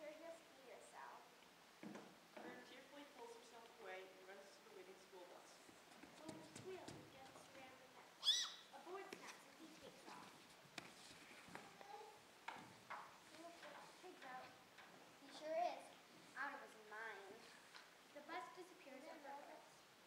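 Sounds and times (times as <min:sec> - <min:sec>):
knocks on wooden stage floor: 0:01.8 - 0:02.6
child's high-pitched squeal: 0:08.2 - 0:08.7
faint children's voices: 0:11.3 - 0:20.0.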